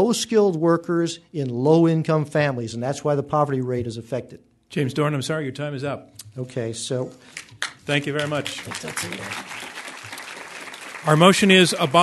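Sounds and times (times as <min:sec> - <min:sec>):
audience applauding: 0:07.3 - 0:12.0.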